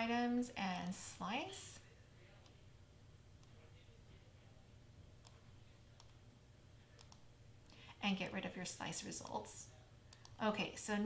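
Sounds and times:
faint computer mouse clicks: 7.0s - 7.8s.

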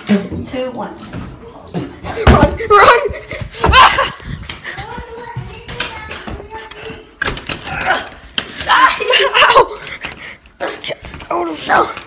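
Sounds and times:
children yelling and laughing: 2.0s - 11.8s.

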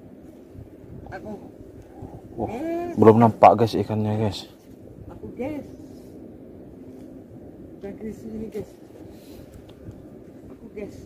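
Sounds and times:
faint background noise: 0.0s - 11.0s.

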